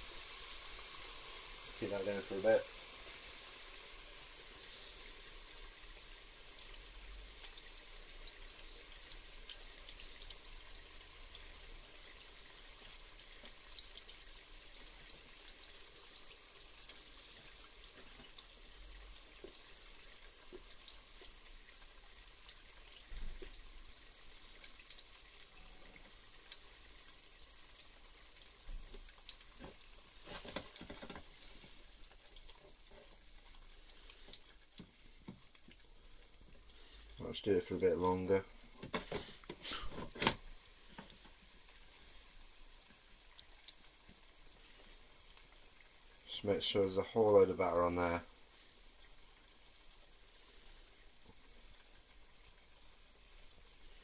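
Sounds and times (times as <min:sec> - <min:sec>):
batter deep-frying in oil: 0:00.0 - 0:54.0.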